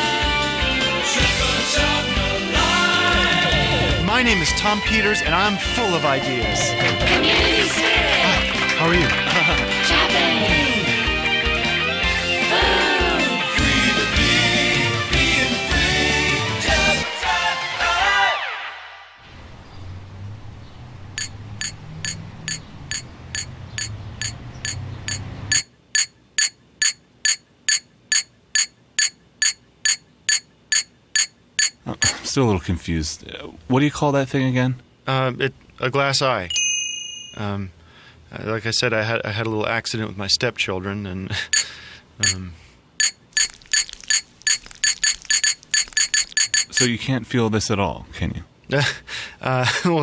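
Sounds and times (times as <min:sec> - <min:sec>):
rod tapping on glass: 0:21.2 - 0:31.8, 0:41.6 - 0:42.4, 0:43.0 - 0:46.9
ringing clinks of small object: 0:36.5 - 0:37.4, 0:43.0 - 0:46.9.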